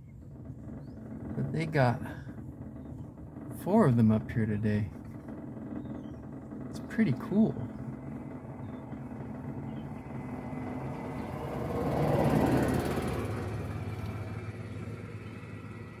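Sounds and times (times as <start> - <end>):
car engine idling: 0.0 - 16.0
rush of vehicle noise: 8.9 - 16.0.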